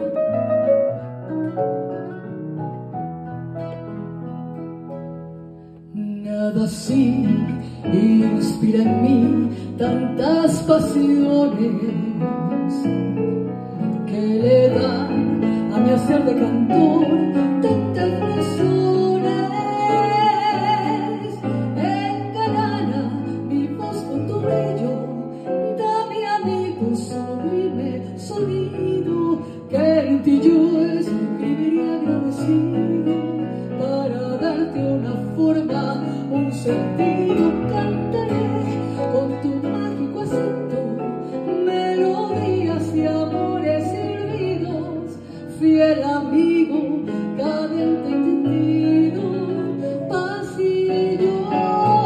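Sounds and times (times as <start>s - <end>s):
acoustic guitar: 0.0s - 52.0s
piano: 0.0s - 52.0s
woman singing into a microphone: 5.9s - 52.0s.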